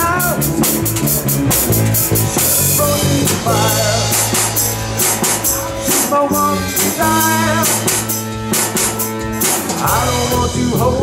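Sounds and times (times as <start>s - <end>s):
drum kit with cymbal hits: 0.0s - 11.0s
electric guitar holding notes: 0.0s - 11.0s.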